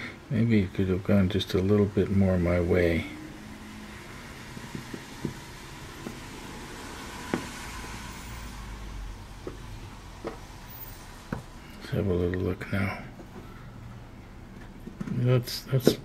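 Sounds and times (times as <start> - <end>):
background hiss: 0.0 - 16.0
low rumble of passing traffic: 0.0 - 16.0.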